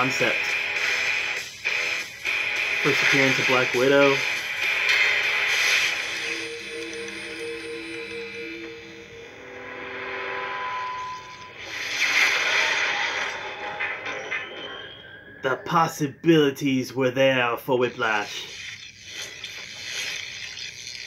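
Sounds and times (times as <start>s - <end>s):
loud swell of noise: 6.2s - 14.1s.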